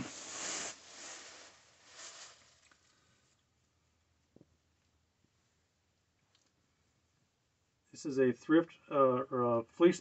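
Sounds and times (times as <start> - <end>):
blanket rustling: 0.0 - 3.1.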